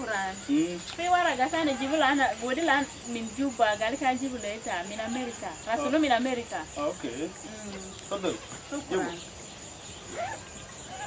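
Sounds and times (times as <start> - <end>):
crickets chirring: 0.0 - 11.0
man and woman talking: 5.6 - 9.4.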